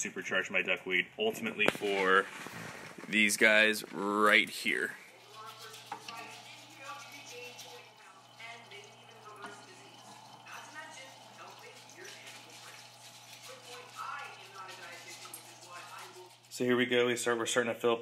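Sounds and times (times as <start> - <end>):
steady low hum: 4.6 - 17.4
faint voices: 5.1 - 16.4
water dripping and splashing: 5.2 - 16.6.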